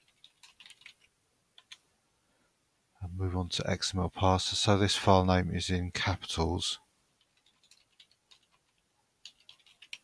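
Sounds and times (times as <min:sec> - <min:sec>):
faint computer keyboard typing: 0:00.0 - 0:01.9, 0:07.1 - 0:10.0.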